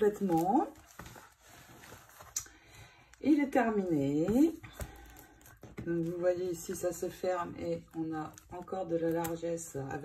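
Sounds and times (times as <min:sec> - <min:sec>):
paper notebook rustling: 0:00.0 - 0:10.0.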